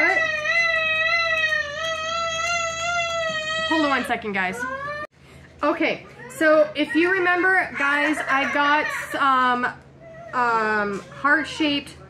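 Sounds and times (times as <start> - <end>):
child crying high-pitched: 0.0 - 5.1, 6.3 - 9.5.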